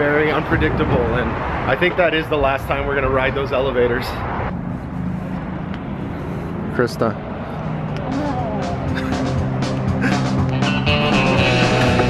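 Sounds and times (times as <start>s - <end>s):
low vehicle hum: 0.0s - 12.0s
road noise: 0.0s - 12.0s.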